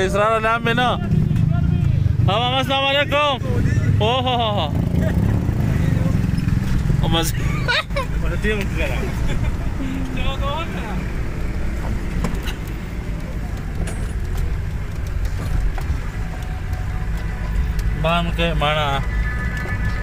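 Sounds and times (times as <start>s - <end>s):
vehicle engine and road rumble: 0.0s - 20.0s
voices: 0.0s - 20.0s.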